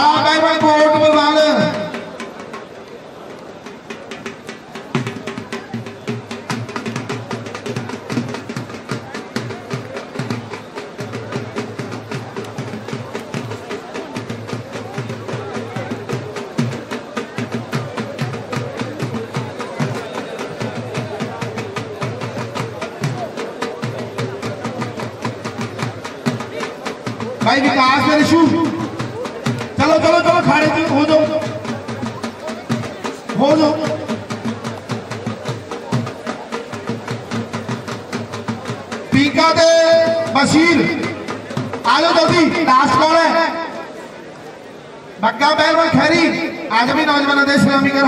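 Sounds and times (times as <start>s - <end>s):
fast continuous drumming: 0.0s - 48.0s.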